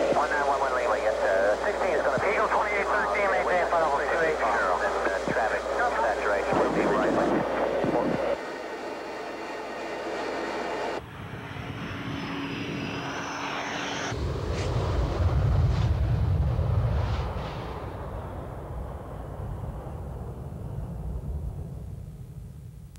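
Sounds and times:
radio speech: 0.0 - 8.4
jet engine whine and rumble: 0.0 - 22.9.

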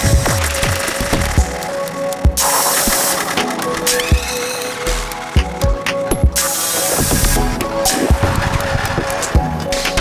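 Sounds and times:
glitchy percussive hits: 2.3 - 10.0.

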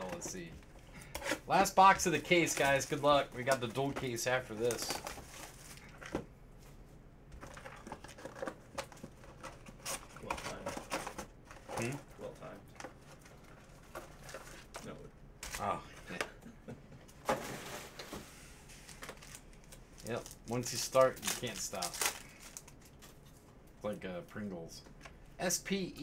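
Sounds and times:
foil packs crinkling and tearing: 18.8 - 23.0.

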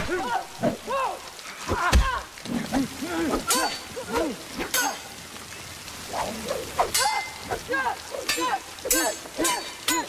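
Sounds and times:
heavy rain hiss: 0.0 - 10.0.

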